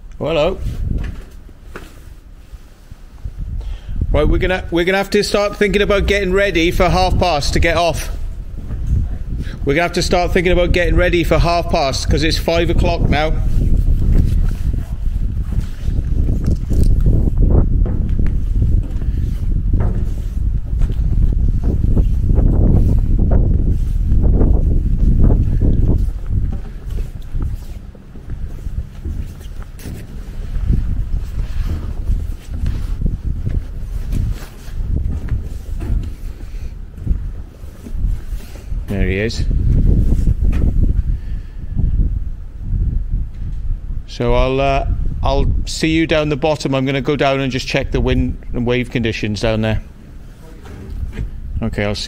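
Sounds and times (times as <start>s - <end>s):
wind buffeting microphone: 0.0s - 46.5s, 47.1s - 52.0s.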